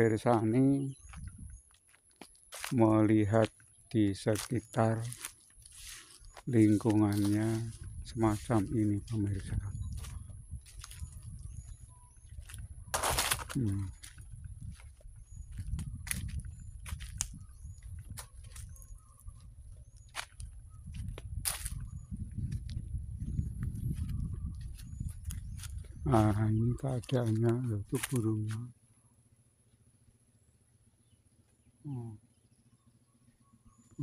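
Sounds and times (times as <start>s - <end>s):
bird chirping: 0.0s - 1.8s, 2.7s - 28.7s, 31.0s - 34.0s
wind rumbling on microphone: 0.9s - 1.6s, 5.0s - 28.1s
footsteps through dry leaves: 2.5s - 2.8s, 4.4s - 22.7s, 23.8s - 28.5s
twigs snapping: 27.9s - 28.2s.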